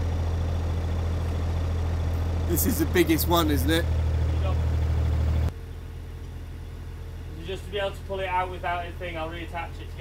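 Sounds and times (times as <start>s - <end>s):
excavator engine humming: 0.0s - 10.0s.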